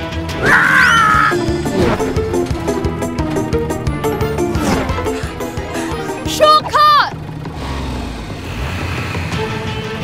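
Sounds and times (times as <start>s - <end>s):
background music: 0.0s - 10.0s
cartoon vehicle rumble: 0.2s - 10.0s.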